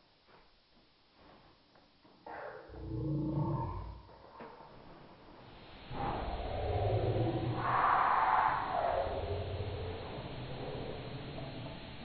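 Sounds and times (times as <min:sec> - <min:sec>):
deep creature roar: 0:02.7 - 0:04.1, 0:05.9 - 0:11.7.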